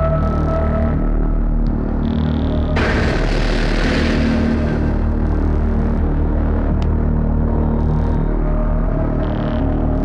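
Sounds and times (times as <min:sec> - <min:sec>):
low background music drone: 0:00.0 - 0:10.0
loud rushing whoosh: 0:02.8 - 0:05.8.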